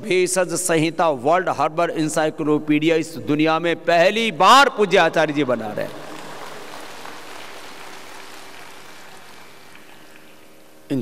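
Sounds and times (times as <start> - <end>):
crowd ambience hiss: 5.4 - 11.0.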